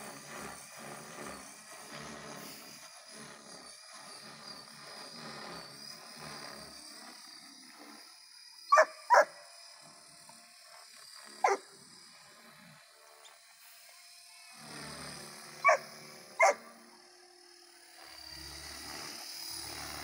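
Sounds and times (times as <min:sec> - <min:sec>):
dog barking: 0:08.7 - 0:09.3, 0:15.6 - 0:15.8, 0:16.4 - 0:16.6.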